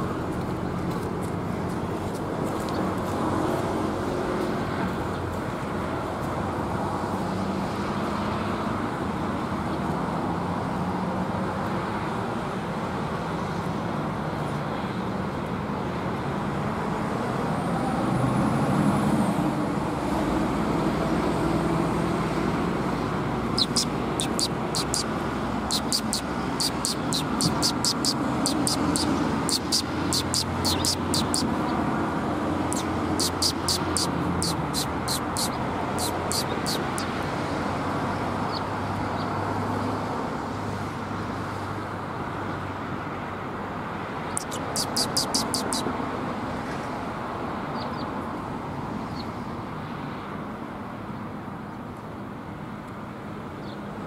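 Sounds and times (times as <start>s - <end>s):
road traffic: 0.0s - 54.0s
sparrows chirping: 23.5s - 31.8s, 32.7s - 37.1s, 38.2s - 39.4s, 44.3s - 45.9s.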